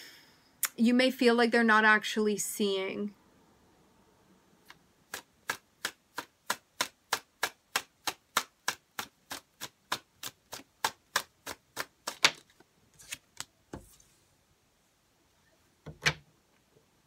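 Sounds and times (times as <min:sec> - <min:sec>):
cards being shuffled: 0:08.7 - 0:14.2.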